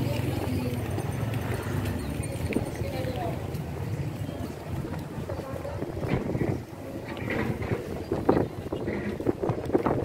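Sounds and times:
faint voices: 0:00.0 - 0:10.0
wind buffeting microphone: 0:02.3 - 0:10.0.

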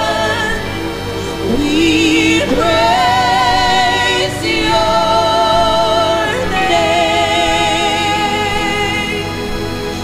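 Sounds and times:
slow live worship music: 0:00.0 - 0:10.0.

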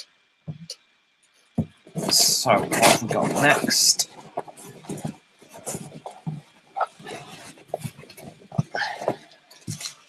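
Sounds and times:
rummaging in box of bottles: 0:01.9 - 0:10.0.

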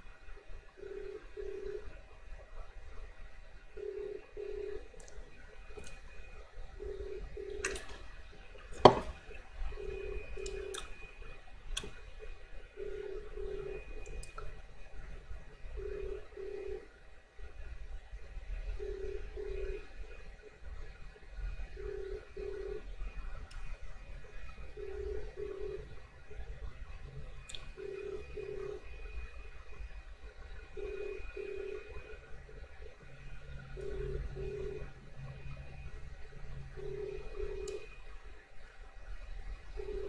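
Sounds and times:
telephone ringback tone: 0:00.8 - 0:01.9, 0:03.7 - 0:05.0, 0:06.8 - 0:08.0, 0:09.8 - 0:11.2, 0:12.8 - 0:14.1, 0:15.8 - 0:16.9, 0:18.7 - 0:19.9, 0:21.8 - 0:22.9, 0:24.7 - 0:25.9, 0:27.7 - 0:29.1, 0:30.7 - 0:32.2, 0:33.7 - 0:35.0, 0:36.7 - 0:38.0, 0:39.7 - 0:40.0.

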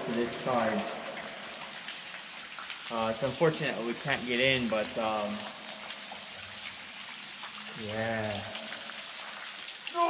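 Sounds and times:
low steady hiss: 0:00.0 - 0:10.0.

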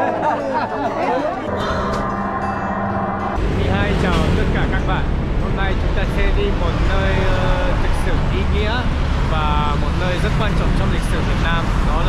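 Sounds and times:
vehicle engine running: 0:01.6 - 0:12.0
people talking: 0:03.4 - 0:12.0.

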